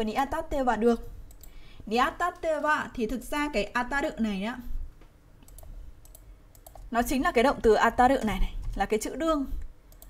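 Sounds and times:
faint computer mouse clicks: 1.3s - 1.6s, 5.4s - 6.9s, 9.6s - 10.0s.

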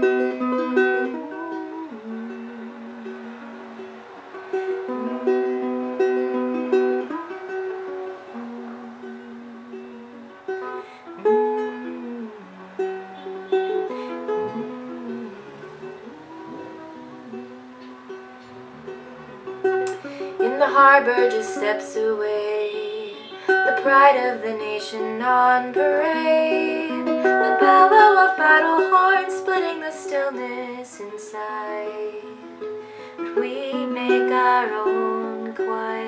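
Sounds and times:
acoustic ukulele playing: 0.0s - 36.0s.

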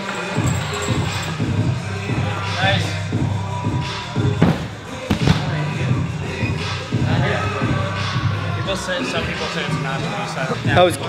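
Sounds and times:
background music with singing: 0.0s - 11.0s.

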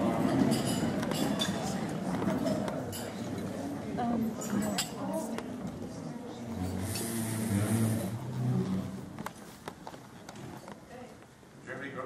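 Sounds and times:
low indistinct murmur: 0.0s - 12.0s.

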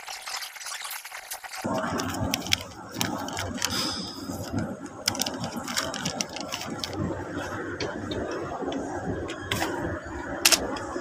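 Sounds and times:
plastic wrapper crinkling: 1.6s - 7.0s.

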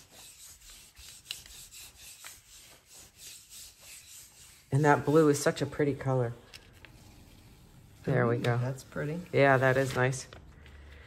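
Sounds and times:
soft rubbing strokes on paper: 0.0s - 10.4s.

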